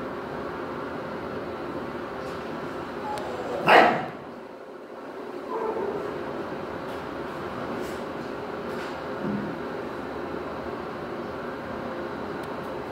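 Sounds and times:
steady background hum: 0:00.0 - 0:12.9
dog barking: 0:03.2 - 0:04.2.

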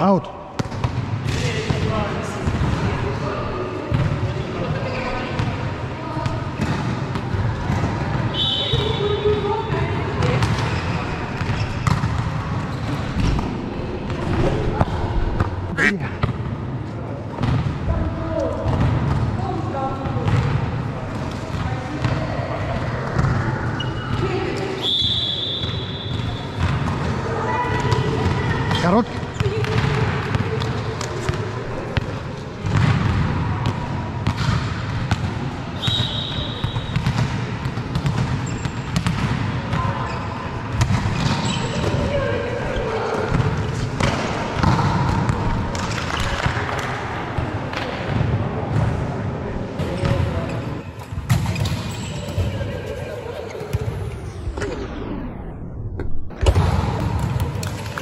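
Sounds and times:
players' voices: 0:00.0 - 0:58.0
volleyball hits and bounces: 0:25.6 - 0:40.0, 0:40.7 - 0:42.2, 0:43.2 - 0:49.0, 0:49.8 - 0:52.6, 0:56.0 - 0:58.0.

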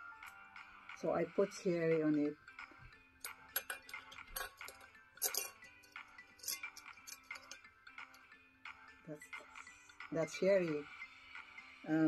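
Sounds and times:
faint background music: 0:00.0 - 0:12.0
metal chain label clinking on glass: 0:03.2 - 0:08.1.

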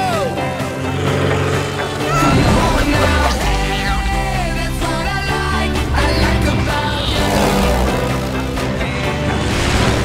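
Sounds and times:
low engine-like drone: 0:00.0 - 0:10.0
trailer music: 0:00.0 - 0:10.0.

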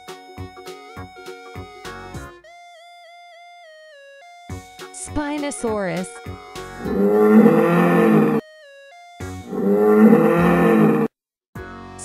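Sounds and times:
dinosaur roar: 0:06.8 - 0:08.4, 0:09.5 - 0:11.1.

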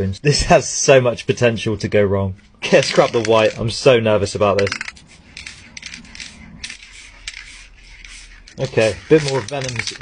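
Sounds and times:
spray paint can hissing: 0:04.7 - 0:10.0.

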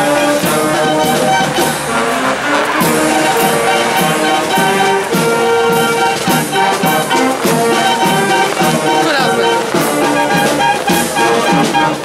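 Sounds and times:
brass marching band playing: 0:00.0 - 0:12.0
steady drum beat: 0:00.0 - 0:12.0.

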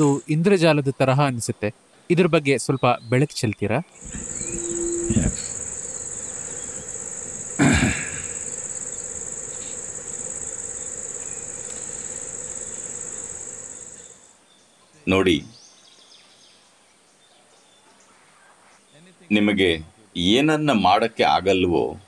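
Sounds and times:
night insects chirring: 0:00.0 - 0:00.3, 0:04.0 - 0:14.3.

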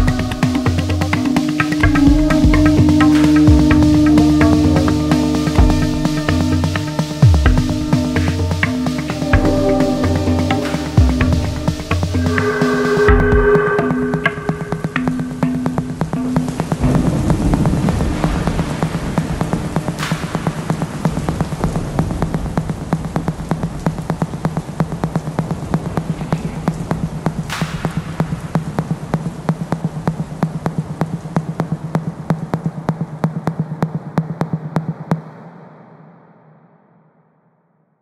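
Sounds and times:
low electronic drone: 0:00.0 - 0:20.1
noise swooshes: 0:00.0 - 0:36.7.

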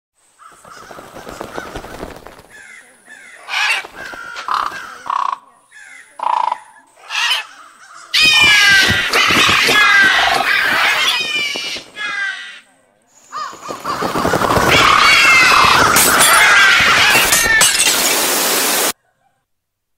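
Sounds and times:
crows cawing: 0:00.3 - 0:12.7, 0:13.3 - 0:17.7.

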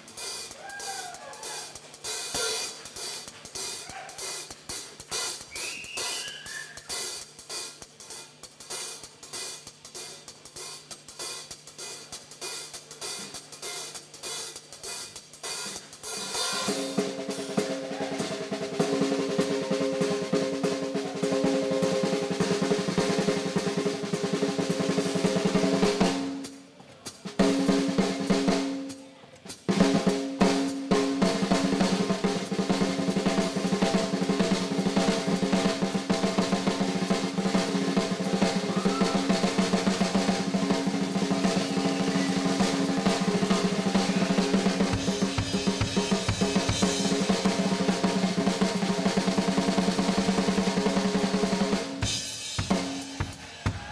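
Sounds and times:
drum kit solo: 0:00.0 - 0:53.9.

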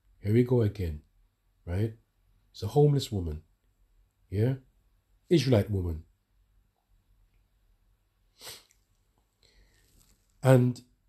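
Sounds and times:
short sharp breath: 0:08.3 - 0:08.8.

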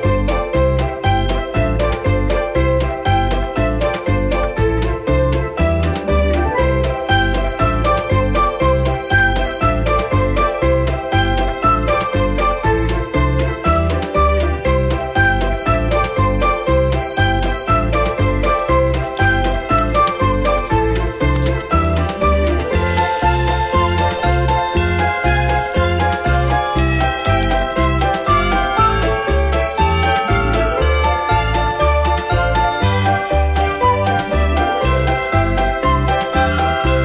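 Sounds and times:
jingling bell tune: 0:00.0 - 0:37.0.

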